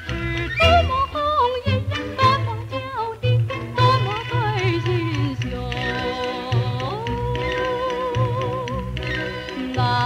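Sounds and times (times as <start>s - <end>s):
small band accompaniment: 0.0s - 10.0s
woman singing high melody: 0.2s - 8.8s.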